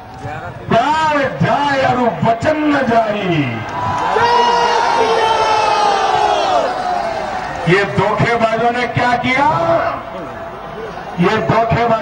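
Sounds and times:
crowd shouting together: 0:03.6 - 0:07.8.

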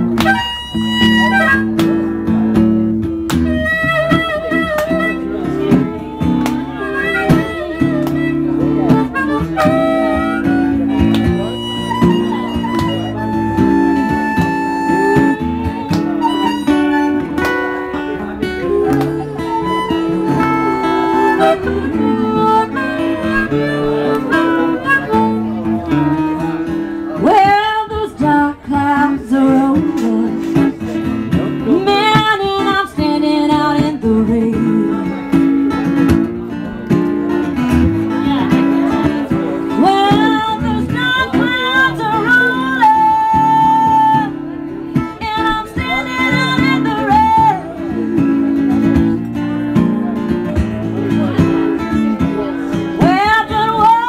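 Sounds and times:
bending lead guitar notes: 0:00.0 - 0:54.0
guitar chords: 0:00.0 - 0:54.0
live band playing slow blues: 0:00.0 - 0:54.0.

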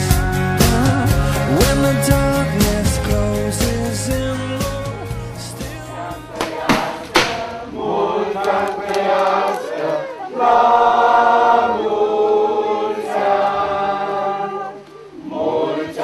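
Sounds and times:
choir singing held chords: 0:00.0 - 0:16.0.

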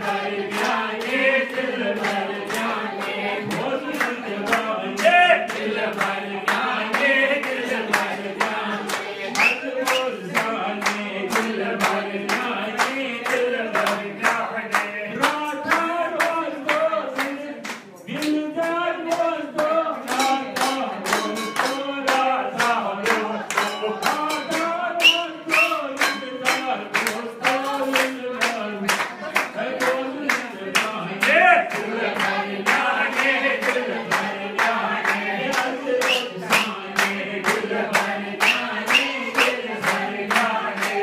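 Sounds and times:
group of voices singing: 0:00.0 - 0:41.0
rhythmic hand clapping: 0:00.0 - 0:41.0.

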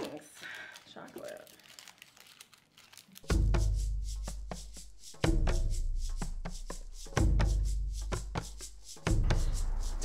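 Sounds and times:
crinkling and rustling: 0:00.0 - 0:03.4.

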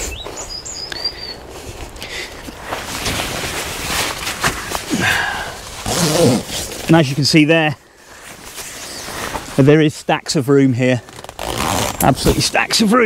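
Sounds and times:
bird whistling: 0:00.1 - 0:01.4
fabric rustling: 0:01.5 - 0:07.4, 0:08.1 - 0:09.7, 0:10.9 - 0:12.6.

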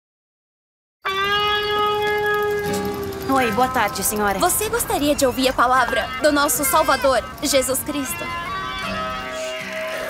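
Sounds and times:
steady held tone: 0:01.1 - 0:10.0.

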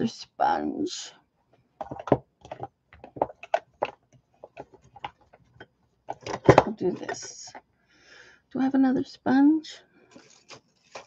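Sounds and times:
jars clicking and knocking on desk: 0:01.8 - 0:07.6.

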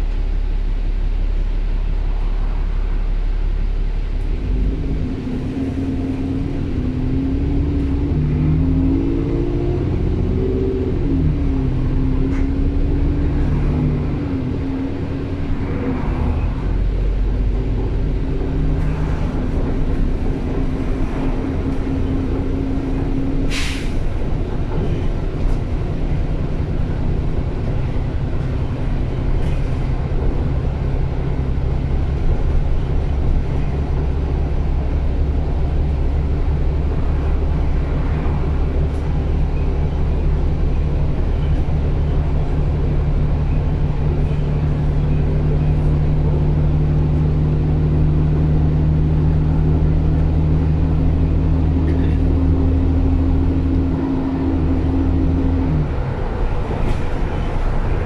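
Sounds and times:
bus diesel engine running: 0:00.0 - 0:58.0.

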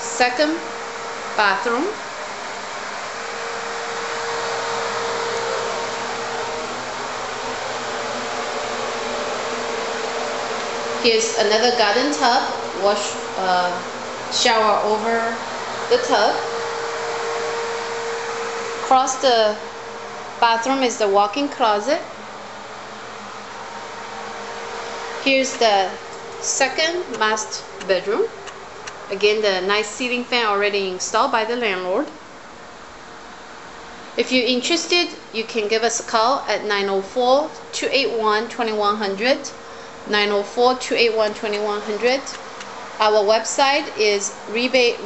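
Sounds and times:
background hiss: 0:00.0 - 0:35.3
faint constant hum: 0:00.0 - 0:45.0
ventilation fan whooshing: 0:00.0 - 0:45.0.

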